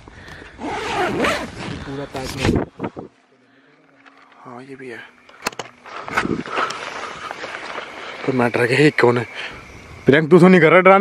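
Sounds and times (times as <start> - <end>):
tent zipper rasping: 0.6 - 2.6
man talking: 10.1 - 11.0.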